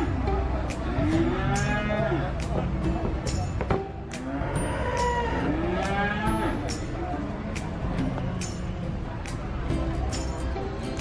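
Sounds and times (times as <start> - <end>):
cattle mooing: 1.1 - 2.2, 4.2 - 6.6.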